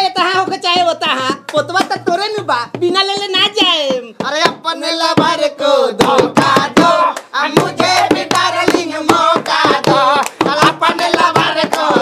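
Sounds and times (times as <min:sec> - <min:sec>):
hand claps: 0:00.0 - 0:02.5, 0:05.9 - 0:12.0
voices singing folk song: 0:03.9 - 0:12.0.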